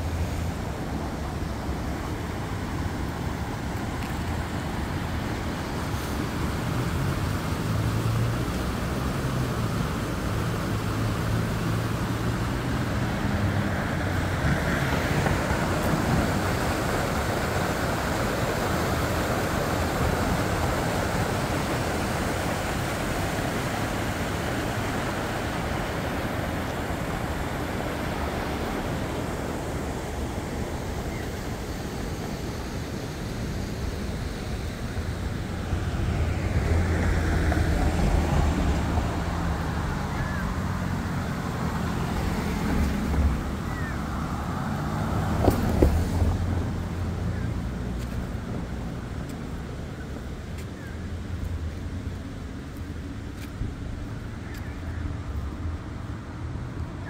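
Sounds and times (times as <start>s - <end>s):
river water rushing: 0.0s - 57.0s
road traffic noise: 0.0s - 57.0s
vehicle engine hum: 0.0s - 57.0s.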